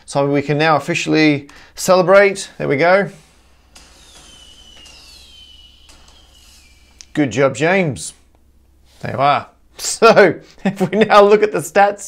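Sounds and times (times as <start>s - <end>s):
falling firework whistle: 3.0s - 7.4s
soft pops: 3.1s - 7.2s.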